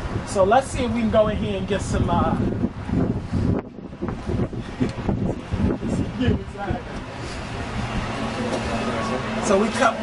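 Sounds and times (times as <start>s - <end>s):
wind buffeting microphone: 0.0s - 9.8s.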